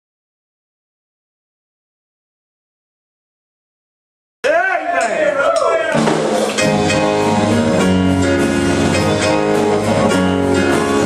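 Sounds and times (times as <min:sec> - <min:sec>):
gospel band playing: 0:04.4 - 0:11.0
strummed guitar: 0:05.6 - 0:11.0.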